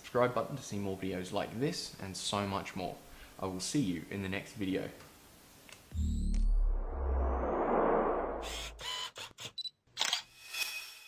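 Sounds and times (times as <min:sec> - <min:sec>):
low rumbling whoosh: 0:05.9 - 0:08.8.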